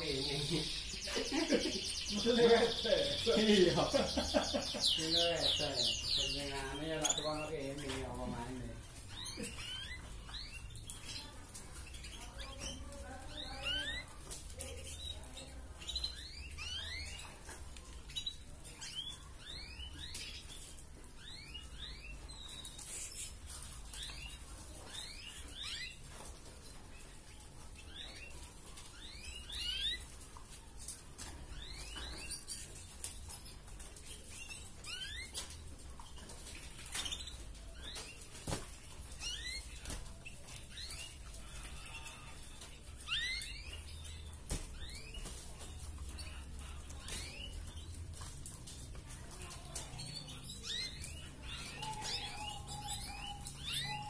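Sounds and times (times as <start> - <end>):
canary chirping: 0.0 - 54.0.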